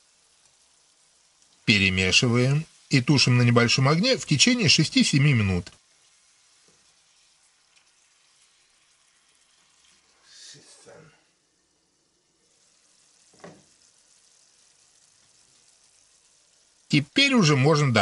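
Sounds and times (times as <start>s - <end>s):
vegetables sizzling in a frying pan: 0.0s - 18.0s
knock: 13.4s - 13.7s.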